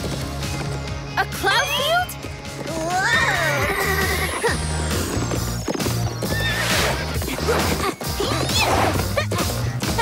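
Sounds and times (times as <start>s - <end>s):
background music with low notes: 0.0s - 10.0s.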